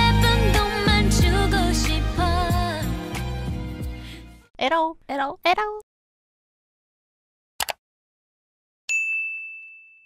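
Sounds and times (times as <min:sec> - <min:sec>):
bright bell ding: 0:08.9 - 0:10.0.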